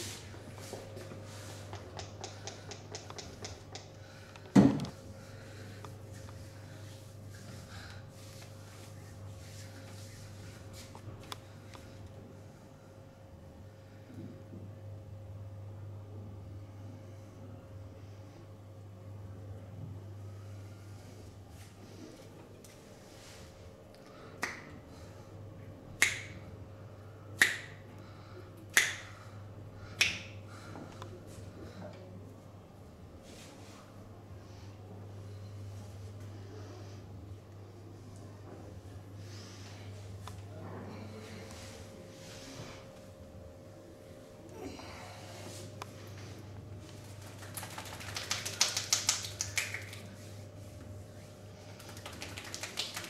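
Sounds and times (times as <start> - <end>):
sharp finger snaps during massage: 1.7 - 3.9, 24.4 - 24.7, 25.9 - 26.4, 27.4 - 27.8, 28.7 - 29.2, 30.0 - 30.4, 47.4 - 50.1
hands slapping on skin: 26.0 - 26.4, 27.4 - 27.8, 28.7 - 29.1, 30.0 - 30.3, 47.2 - 50.1, 51.8 - 53.0.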